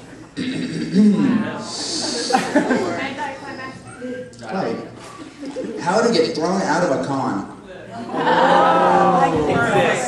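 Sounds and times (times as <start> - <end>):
unclear voices: 0.4 - 10.0.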